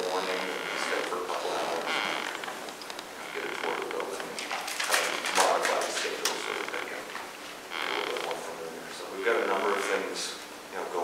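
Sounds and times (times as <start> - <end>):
low indistinct voices: 0.0 - 7.1.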